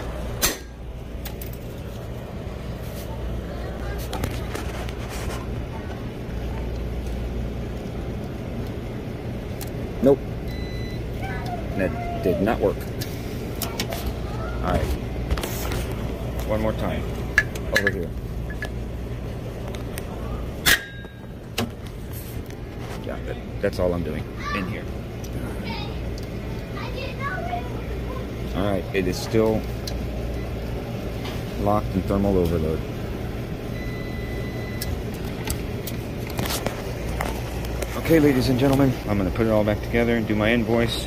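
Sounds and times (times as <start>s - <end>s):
steady low hum: 0.0s - 41.0s
high beep: 10.5s - 11.0s, 33.8s - 34.9s.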